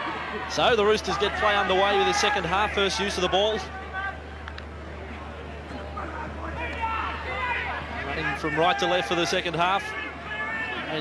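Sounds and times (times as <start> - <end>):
faint crowd noise: 0.0 - 11.0
faint voices talking: 0.0 - 11.0.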